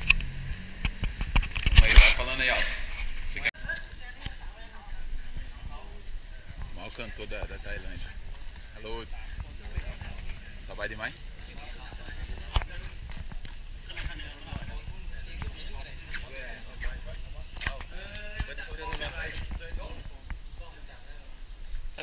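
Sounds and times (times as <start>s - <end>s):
microphone handling rumble: 0.0s - 3.5s, 5.1s - 20.8s
men chatting: 1.8s - 3.5s, 5.2s - 22.0s.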